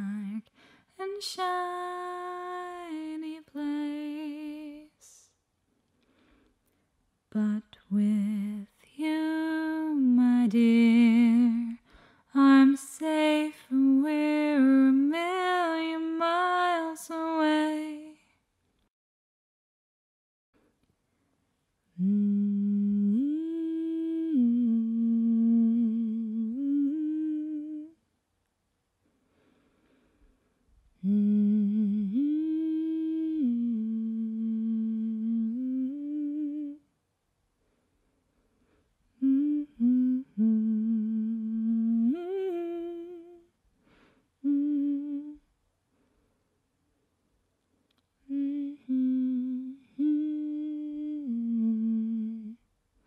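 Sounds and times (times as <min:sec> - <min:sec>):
woman humming a melody: 0:00.0 - 0:05.3, 0:07.4 - 0:11.8, 0:21.9 - 0:28.0, 0:31.0 - 0:36.9, 0:39.2 - 0:43.5, 0:44.4 - 0:45.5, 0:48.2 - 0:52.6
breath: 0:00.5 - 0:01.0, 0:05.9 - 0:06.9, 0:11.8 - 0:12.3, 0:29.1 - 0:30.7, 0:37.6 - 0:39.0, 0:43.8 - 0:44.4, 0:45.9 - 0:46.6.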